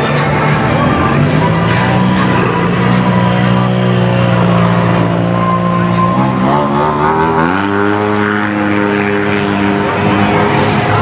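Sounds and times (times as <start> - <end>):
utility vehicle engines droning: 0.0 - 11.0.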